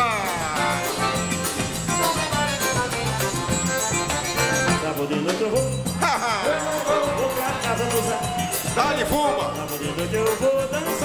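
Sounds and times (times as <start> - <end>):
accordion: 0.0 - 11.0
bass drum: 0.0 - 11.0
drum kit: 0.0 - 11.0.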